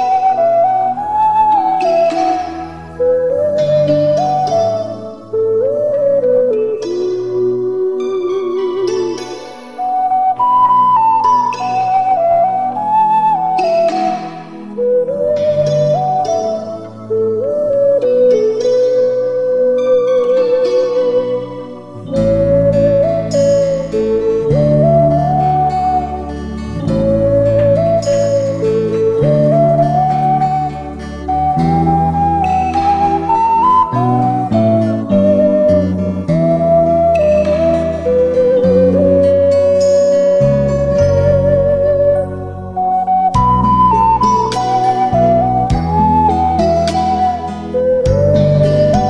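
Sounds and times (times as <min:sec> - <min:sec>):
ocarina melody: 0:00.0 - 0:49.0.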